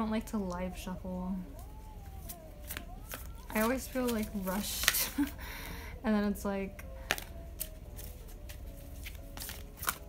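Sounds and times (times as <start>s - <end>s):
cards being shuffled by hand: 1.6s - 5.4s, 7.0s - 10.0s.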